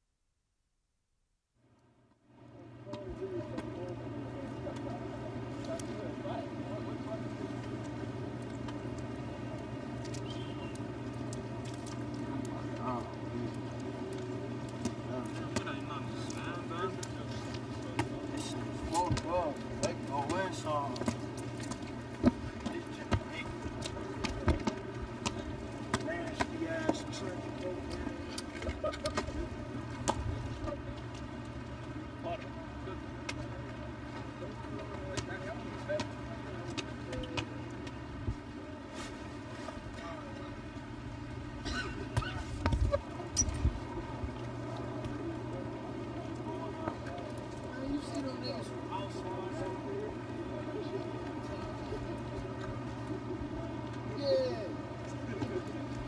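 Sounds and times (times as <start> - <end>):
steady low hum: 1.6 - 56.0
distant people talking: 2.5 - 56.0.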